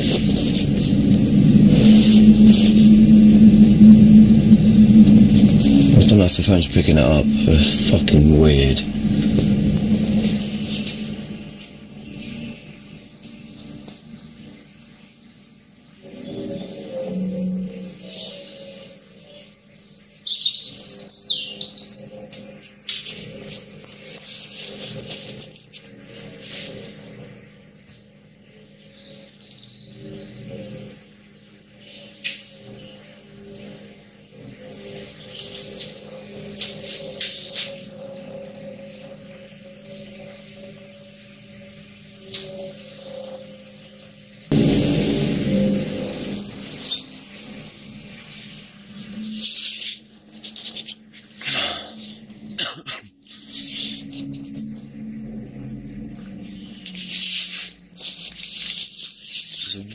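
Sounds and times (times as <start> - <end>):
low droning hum: 0.0 - 14.6, 32.6 - 49.5, 53.6 - 58.4
birds chirping: 37.8 - 48.2.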